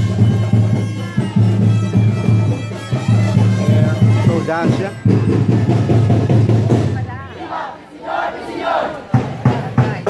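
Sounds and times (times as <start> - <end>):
group shouting and cheering: 7.3 - 9.4.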